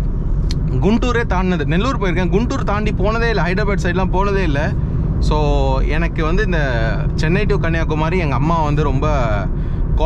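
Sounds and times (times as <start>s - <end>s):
car engine and road noise: 0.0s - 10.0s
man talking: 0.5s - 9.6s.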